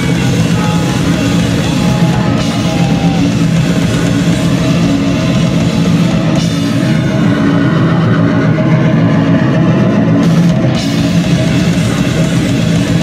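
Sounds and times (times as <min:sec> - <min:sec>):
punk band playing live: 0:00.0 - 0:13.0.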